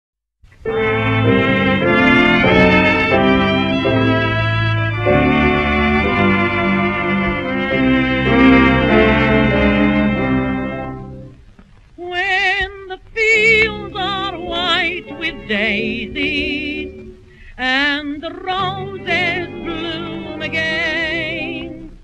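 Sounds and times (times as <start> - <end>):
sustained instrumental chords: 0.5 - 11.7, 13.4 - 22.0
woman singing with vibrato: 12.0 - 22.0.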